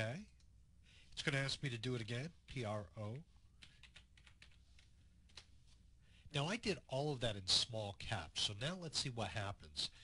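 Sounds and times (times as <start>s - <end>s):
faint keyboard keystrokes: 3.6s - 5.5s.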